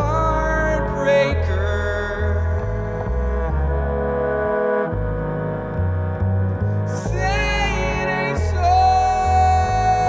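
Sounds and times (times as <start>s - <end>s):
double bass and low strings: 0.0s - 10.0s.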